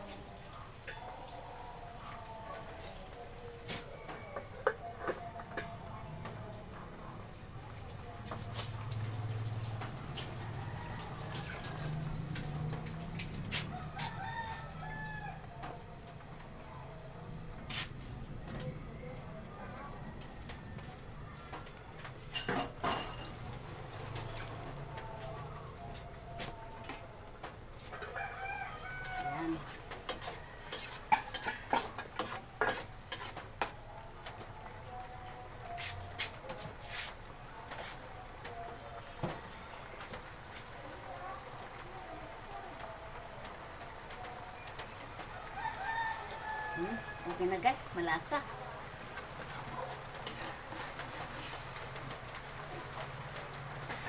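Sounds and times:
chickens clucking and crowing: 18.4s - 54.0s
pot lid and spatula clattering: 22.3s - 24.6s, 29.1s - 33.8s.

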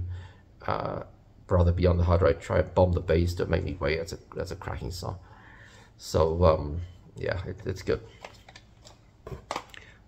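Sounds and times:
cassette cases clicking: 8.2s - 9.8s.

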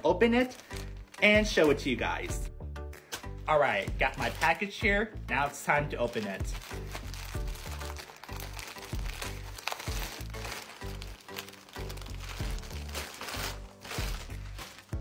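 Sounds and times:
background music with steady beat: 0.0s - 15.0s
plastic bag crinkling and tearing: 0.4s - 1.9s, 3.0s - 4.7s, 6.0s - 15.0s.

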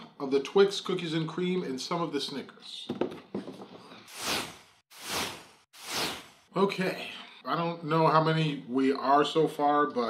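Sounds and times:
whoosh sound effects: 4.1s - 6.5s.

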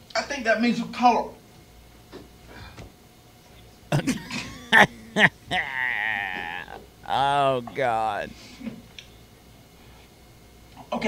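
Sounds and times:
man coughing and sputtering: 3.9s - 8.3s
man groaning high-pitched: 4.0s - 8.3s.

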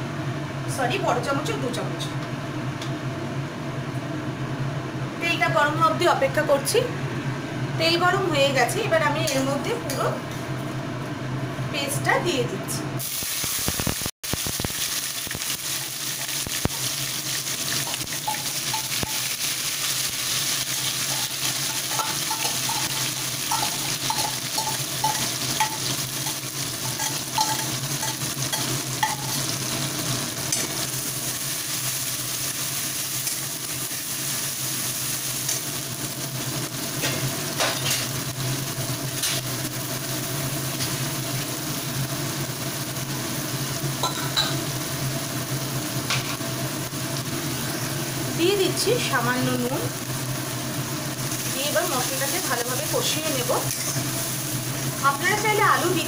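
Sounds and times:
paste sizzling in hot oil: 13.0s - 56.0s.

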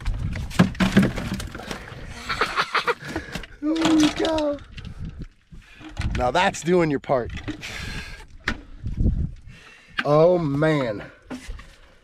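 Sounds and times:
fish thudding into cooler: 0.6s - 1.8s.

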